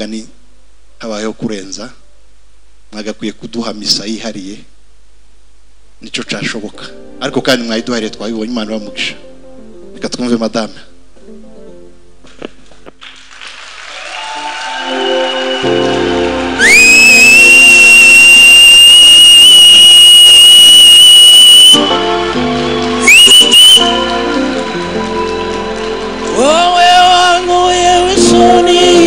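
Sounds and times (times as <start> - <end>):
background music: 6.2 - 12.9, 14.0 - 29.0
loud piercing whistle: 14.2 - 25.9.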